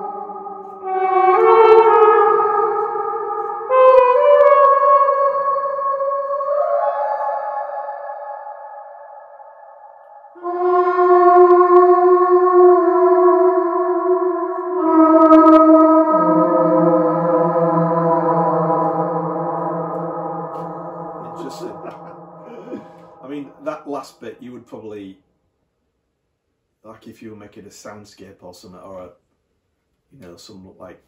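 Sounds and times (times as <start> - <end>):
trumpet notes with reverb: 0.0 - 8.4, 10.4 - 24.8.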